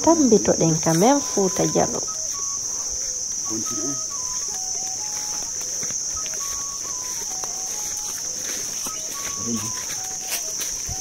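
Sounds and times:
insects trilling: 0.0 - 11.0
short whistled notes: 1.0 - 11.0.

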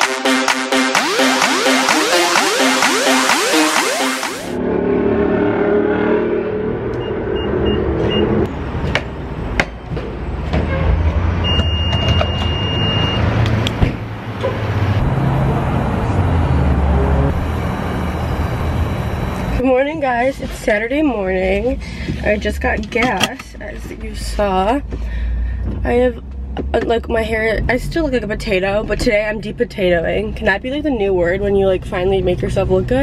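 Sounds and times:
gas pump electronic beeps: 0.0 - 4.6, 7.0 - 8.5, 11.4 - 13.4, 17.2 - 20.2
low rumble of engines and traffic: 4.6 - 33.0.

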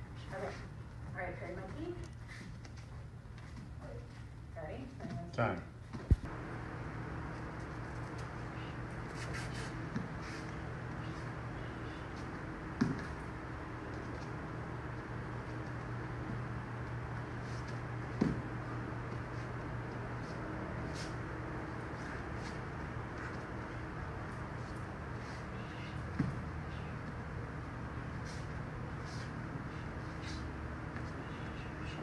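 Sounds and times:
low room hum: 0.0 - 32.0
bare feet thudding on foam mat: 11.9 - 14.4, 17.2 - 19.4, 26.0 - 26.5.

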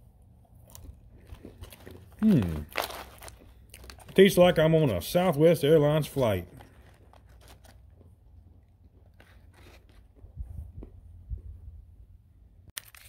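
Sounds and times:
peanuts being chewed: 0.2 - 4.8, 5.9 - 11.5
foil pouch crinkling: 1.2 - 4.6, 6.2 - 8.1, 12.8 - 13.0.

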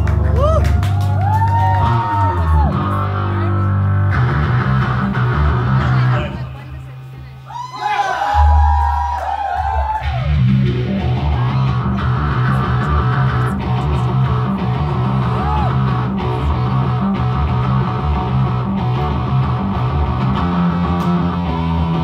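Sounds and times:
live rock band playing: 1.2 - 6.5, 10.0 - 22.0
sustained low bass notes: 1.8 - 7.5, 10.1 - 22.0.

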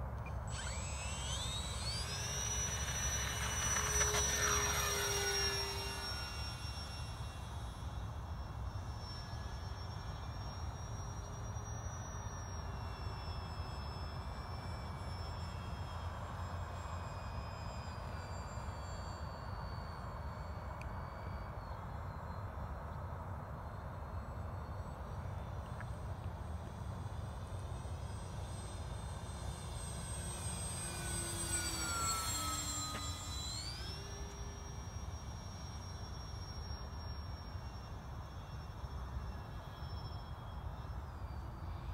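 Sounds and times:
model plane motors whining: 0.0 - 41.9.

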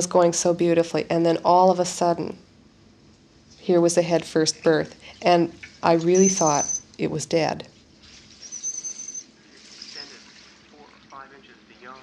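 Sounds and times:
whale whistle: 8.4 - 10.1.

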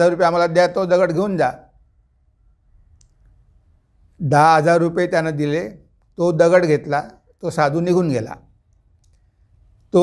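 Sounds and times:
faint click: 2.9 - 3.4, 8.7 - 9.9.

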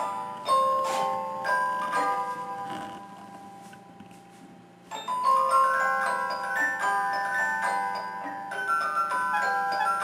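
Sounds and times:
tinkling glockenspiel-like melody: 0.0 - 3.7, 4.9 - 10.0.

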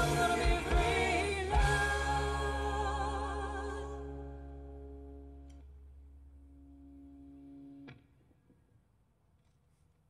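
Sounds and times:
band holding a sustained chord: 0.0 - 5.4
low hum: 0.0 - 7.9.

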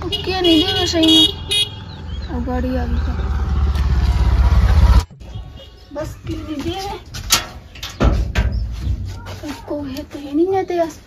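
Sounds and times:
motorcycle engine running: 0.0 - 5.4.

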